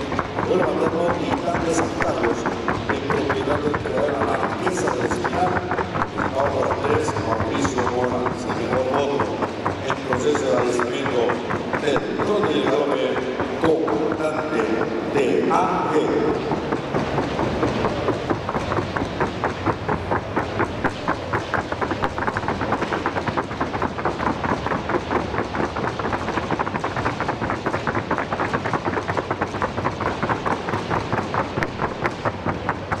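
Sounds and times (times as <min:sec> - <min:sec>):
horse hooves trotting: 0:00.0 - 0:33.0.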